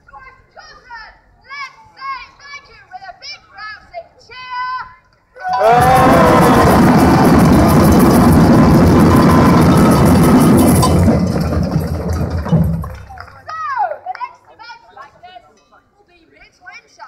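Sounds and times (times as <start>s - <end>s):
crowd voices: 5.4s - 13.5s
drum band playing: 5.6s - 13.4s.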